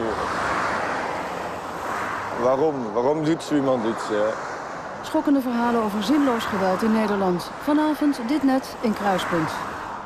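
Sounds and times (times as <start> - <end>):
vehicle passing on motorway: 0.0 - 10.0.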